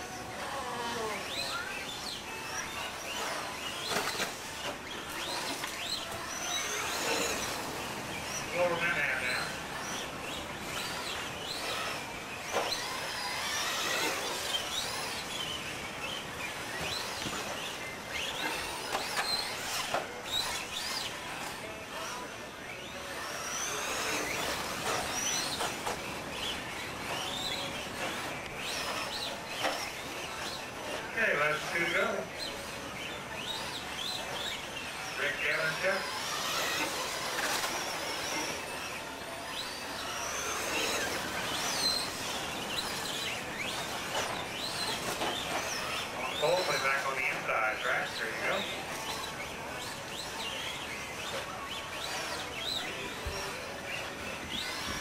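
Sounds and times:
indistinct voices: 0.0 - 55.0
rc truck motors whining: 0.0 - 55.0.

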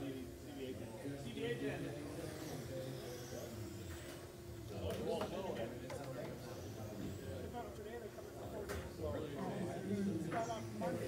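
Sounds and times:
indistinct voices in a hall: 0.0 - 11.0
high whine of rc cars racing: 0.6 - 7.7.

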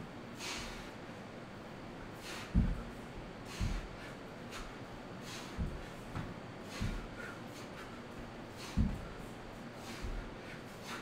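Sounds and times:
fan hiss: 0.0 - 11.0
short sharp breaths: 0.3 - 1.2, 2.1 - 11.0
body thudding on hard floor: 2.5 - 2.9, 8.8 - 9.2.

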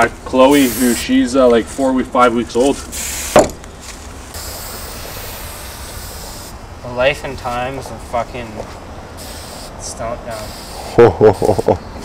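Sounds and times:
spray paint can hissing: 0.5 - 1.1, 2.9 - 3.4, 4.3 - 6.6, 9.2 - 11.8
sharp knock: 3.3 - 3.6.

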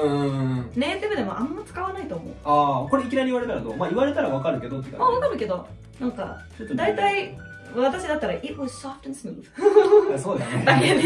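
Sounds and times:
man and woman laughing: 9.6 - 11.0.

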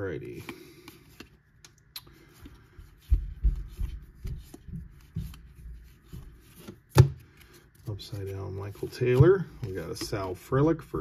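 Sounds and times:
cards being flipped through: 0.3 - 2.6.

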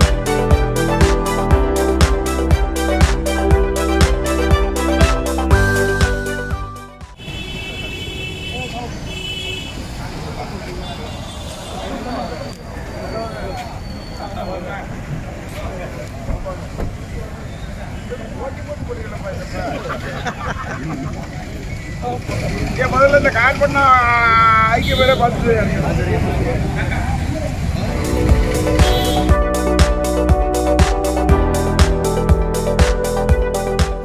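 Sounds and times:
passing traffic: 0.0 - 33.7
high steady horn tone: 7.1 - 9.8, 24.8 - 25.4, 27.8 - 29.8
people talking in a crowd: 9.7 - 29.2
steady low rumble: 26.3 - 30.3.

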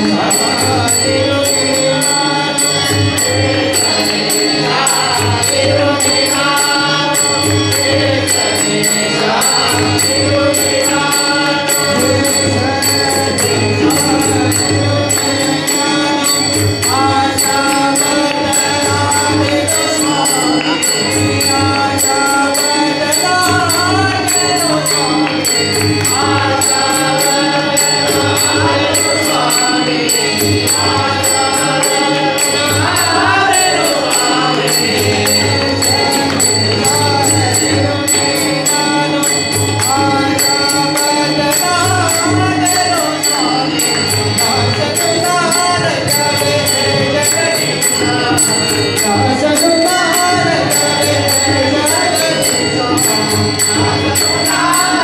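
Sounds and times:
group devotional singing: 0.0 - 55.0
hand cymbals ringing: 0.0 - 55.0
harmonium: 0.0 - 55.0.

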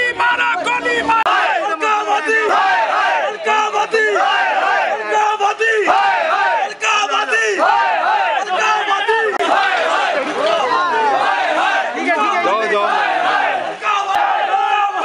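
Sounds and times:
crowd of men shouting slogans: 0.0 - 15.0.

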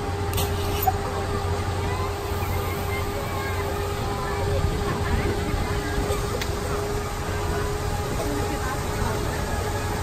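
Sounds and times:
faint distant voices: 0.0 - 10.0
monorail train rumbling: 0.0 - 10.0.

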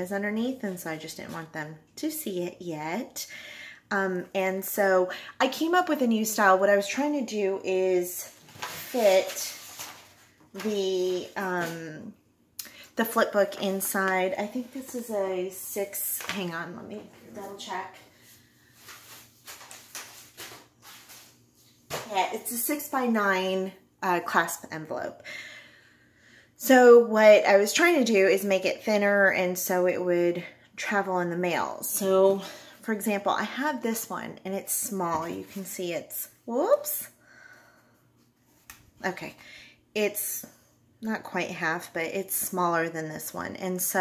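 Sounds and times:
paper envelope rustling: 8.4 - 11.7, 18.7 - 21.8.

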